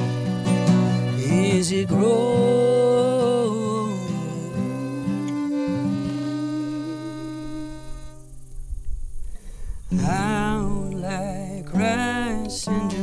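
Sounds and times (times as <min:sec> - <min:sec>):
fiddle: 0:00.0 - 0:08.4
acoustic guitar: 0:00.0 - 0:13.0
man singing: 0:01.0 - 0:08.0, 0:09.9 - 0:13.0.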